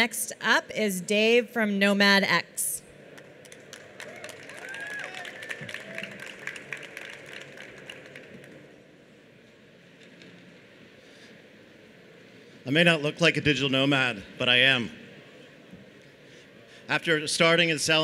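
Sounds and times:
audience applause: 3.2s - 8.8s.

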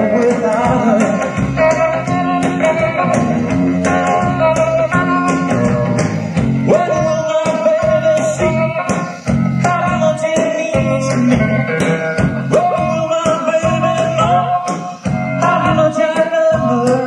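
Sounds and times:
electric guitar bending notes: 0.0s - 17.0s
live rock band playing: 0.0s - 17.0s.

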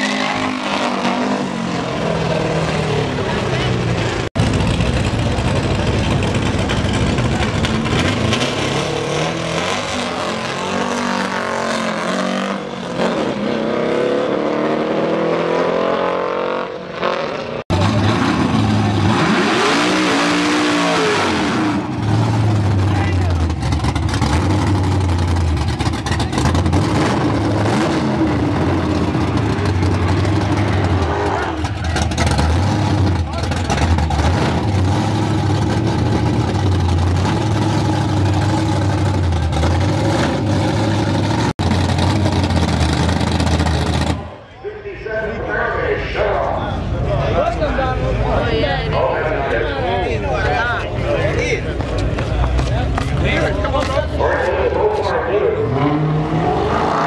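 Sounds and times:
race car engine revving: 0.0s - 50.2s, 50.9s - 57.0s
race car engine idling: 3.1s - 8.4s, 21.8s - 55.6s.

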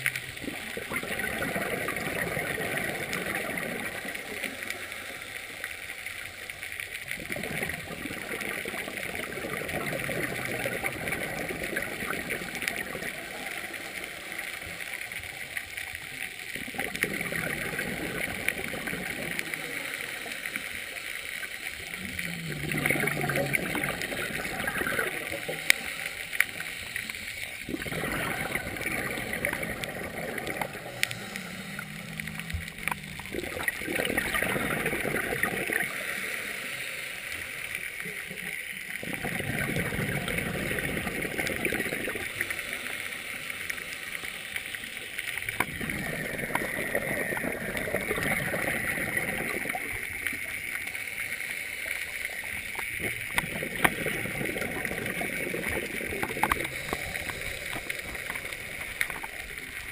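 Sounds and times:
exhaled bubbles underwater: 0.0s - 59.9s
regulator inhale hiss: 30.6s - 33.0s, 35.7s - 38.2s, 56.4s - 59.4s.

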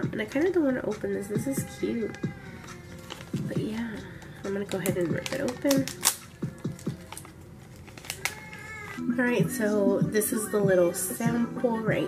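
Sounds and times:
packaging torn open: 2.1s - 9.0s.

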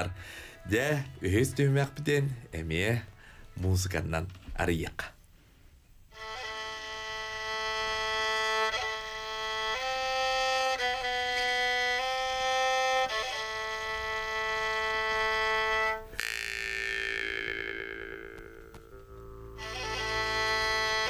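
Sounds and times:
bowed fiddle long notes: 6.1s - 21.0s
jaw harp drone: 15.6s - 21.0s.

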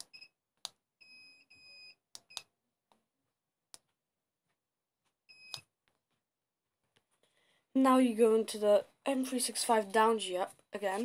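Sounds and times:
soft clicks: 5.5s - 6.2s.

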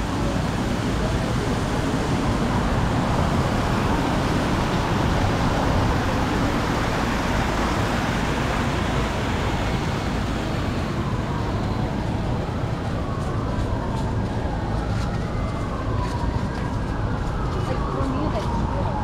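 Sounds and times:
traffic rumble: 0.0s - 19.0s.

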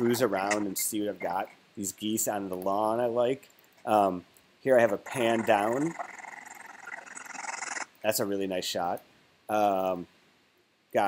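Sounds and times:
choppy buzzy scrubbed audio: 4.8s - 7.8s.

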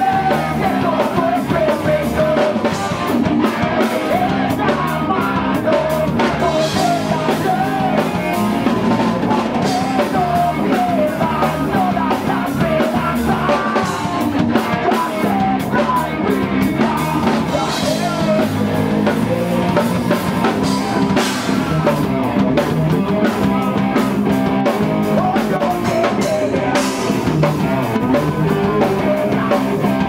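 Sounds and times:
person singing into a microphone: 0.0s - 21.9s, 24.7s - 30.0s
drum kit: 0.0s - 30.0s
electric guitars: 0.0s - 30.0s.

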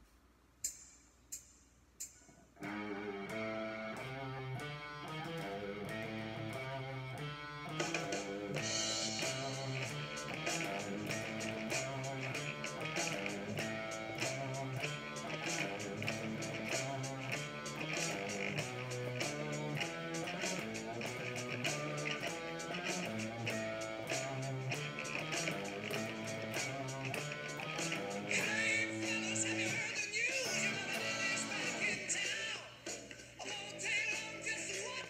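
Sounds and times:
electric guitar rock riff: 2.6s - 35.0s
backing track drum beat: 7.7s - 35.0s.

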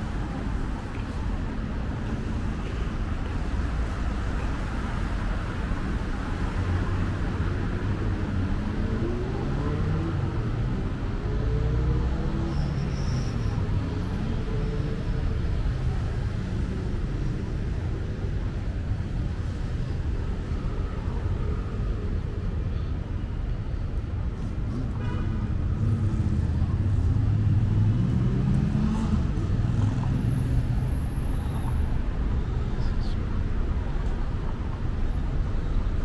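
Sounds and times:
road traffic rumble: 0.0s - 36.0s
vehicle accelerating past: 27.2s - 30.7s.

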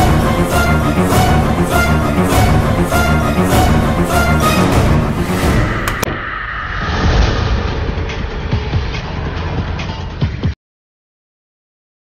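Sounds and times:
suspenseful music score: 0.0s - 10.6s.

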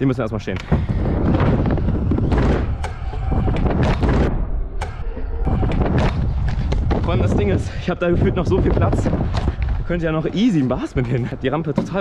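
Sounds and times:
scooter wheels rolling on wooden ramp: 0.6s - 4.0s, 5.4s - 12.0s
wind rumble on microphone: 0.6s - 4.7s, 5.4s - 11.4s
knocks: 11.7s - 12.0s.

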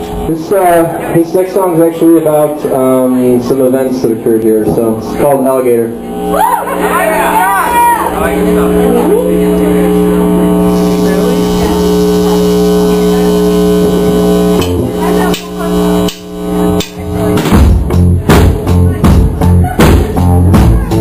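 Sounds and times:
electric guitar chord ringing: 5.8s - 17.5s
rock band playing: 6.0s - 21.0s.

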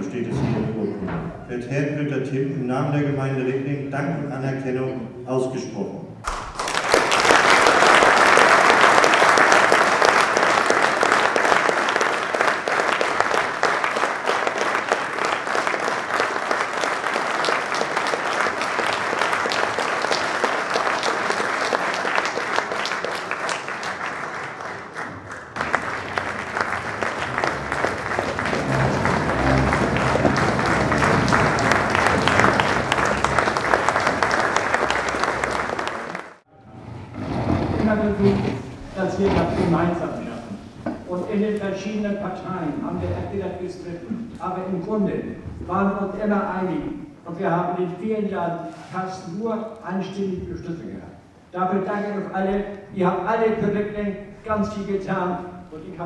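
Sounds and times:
audience applause: 6.3s - 36.4s.

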